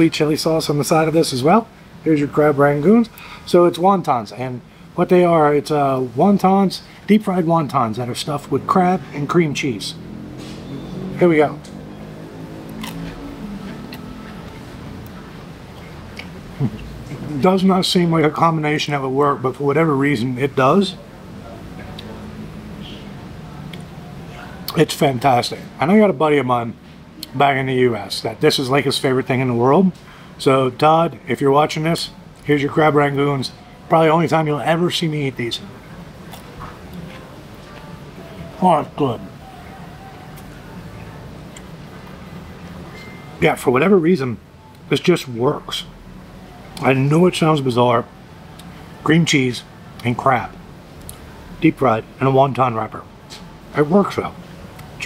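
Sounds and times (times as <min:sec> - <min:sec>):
crunchy food being chewed: 0:12.8 - 0:14.0.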